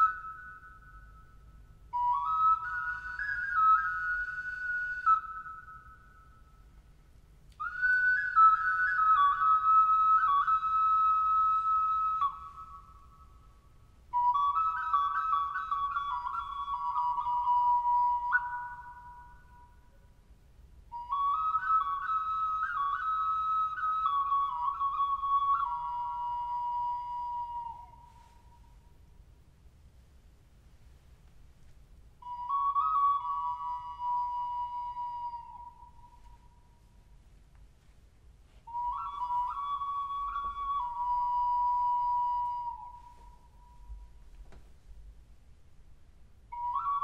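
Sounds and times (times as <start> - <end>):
ocarina melody: 0.0 - 20.2, 20.9 - 29.0, 32.2 - 37.2, 37.8 - 44.4, 46.5 - 47.0.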